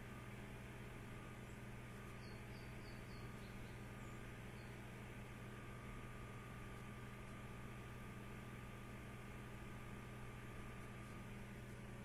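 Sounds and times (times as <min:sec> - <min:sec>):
low electrical hum and hiss: 0:00.0 - 0:12.0.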